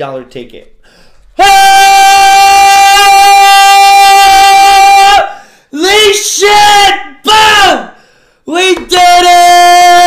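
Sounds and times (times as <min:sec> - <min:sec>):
man yelling: 0:01.4 - 0:10.0.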